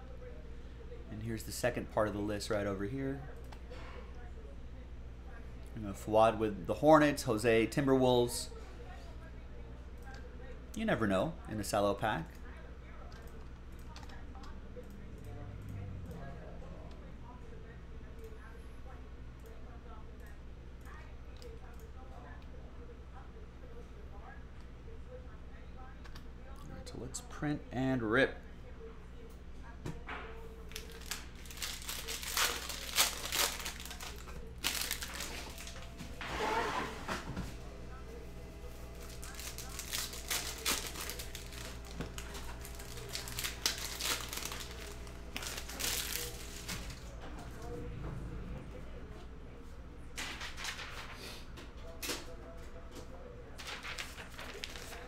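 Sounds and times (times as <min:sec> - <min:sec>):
cellophane crinkling and tearing: 0:30.7 - 0:35.8, 0:39.0 - 0:47.0, 0:53.6 - 0:55.0.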